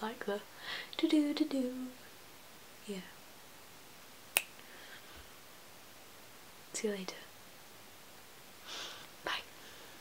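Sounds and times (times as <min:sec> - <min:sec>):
sharp snap-like click: 0:04.4 - 0:04.6.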